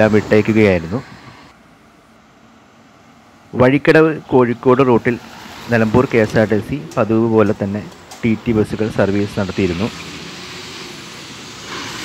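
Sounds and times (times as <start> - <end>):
faint road traffic: 0.0 - 12.0.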